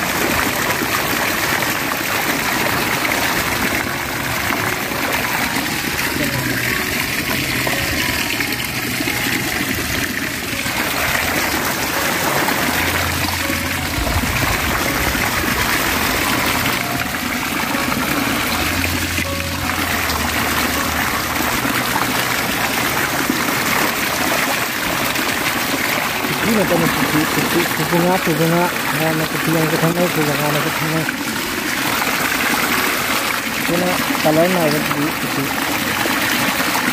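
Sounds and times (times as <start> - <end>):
background music: 0.0 - 36.9
stream water flowing: 0.0 - 36.9.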